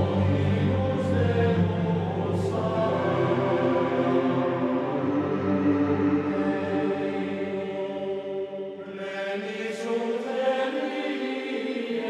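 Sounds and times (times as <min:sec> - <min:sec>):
voices singing chant: 0:00.0 - 0:12.0.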